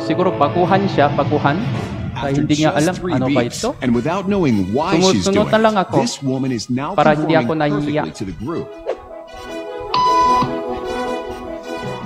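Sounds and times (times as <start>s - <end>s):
background music: 0.0s - 12.0s
electronic beep: 10.0s - 10.6s.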